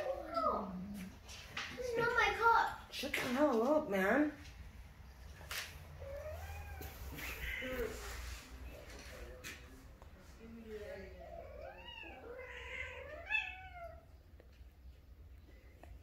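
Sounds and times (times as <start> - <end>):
cat yowling: 11.3 - 14.1.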